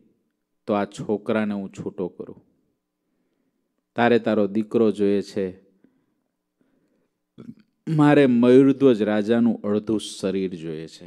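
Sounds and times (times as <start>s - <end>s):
man speaking: 0.6s - 2.4s, 7.4s - 11.0s
man's mouth or throat sound: 7.4s - 7.8s.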